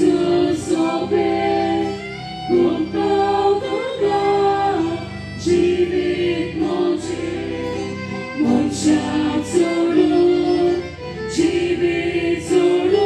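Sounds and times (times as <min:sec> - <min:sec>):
church choir singing a hymn: 0:00.0 - 0:13.0.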